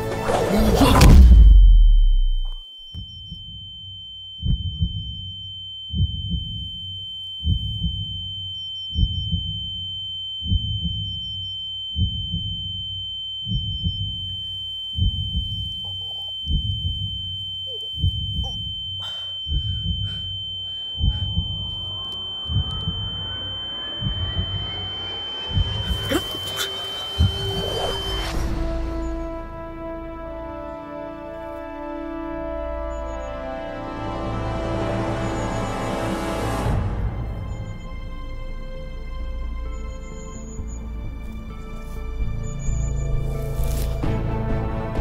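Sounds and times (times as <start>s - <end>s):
heartbeat-like thumps: 0.8s - 29.0s
high ringing tone: 1.5s - 44.0s.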